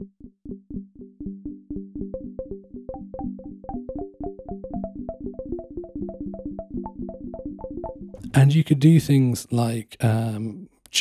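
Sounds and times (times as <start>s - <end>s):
synthesizer plucked pings: 0.0s - 8.3s.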